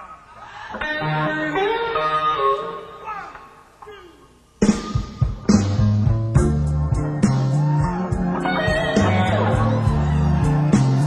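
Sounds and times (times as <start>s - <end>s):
blues band with bass and drums: 4.6s - 11.0s.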